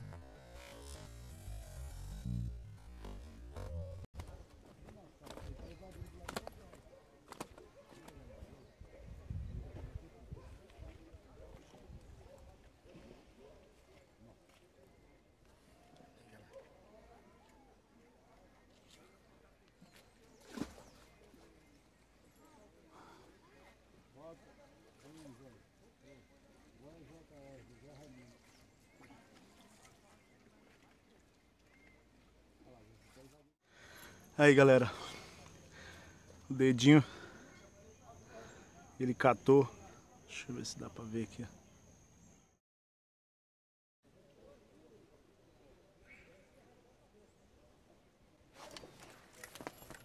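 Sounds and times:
low rumble: 0.0s - 4.1s
murmur of distant voices: 4.2s - 42.4s, 44.1s - 50.0s.

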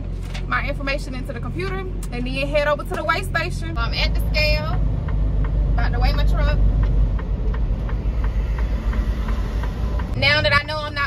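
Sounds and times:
road noise: 0.0s - 11.0s
truck engine low rumble: 0.0s - 11.0s.

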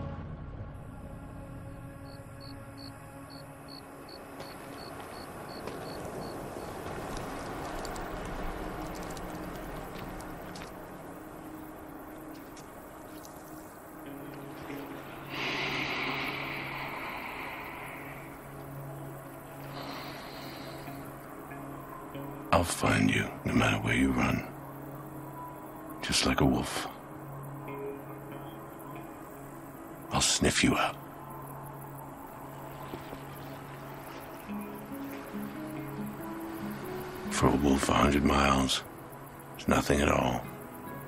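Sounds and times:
film score with low tones: 0.0s - 41.0s
rush of hiss: 15.2s - 18.8s, 19.6s - 21.2s.

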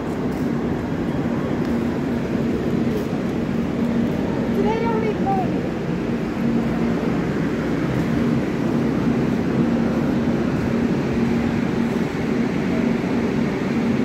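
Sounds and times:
train rumbling: 0.0s - 14.0s.

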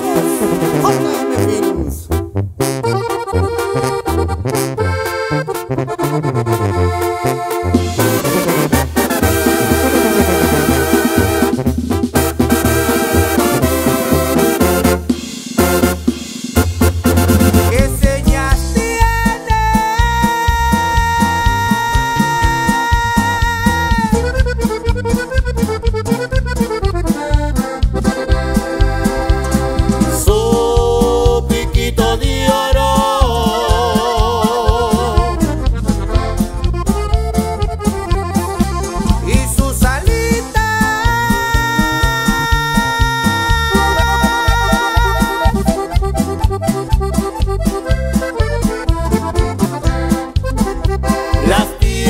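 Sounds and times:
electric bass: 0.0s - 52.0s
button accordion quick run: 2.8s - 52.0s
drums: 7.5s - 52.0s.

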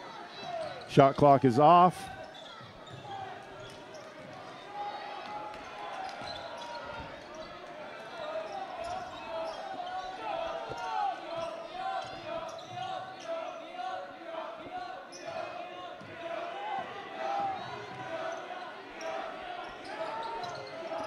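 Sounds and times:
murmur of crowd voices: 0.0s - 21.0s
sneakers squeaking: 2.1s - 4.9s, 5.6s - 13.6s, 15.0s - 16.2s, 17.5s - 21.0s.

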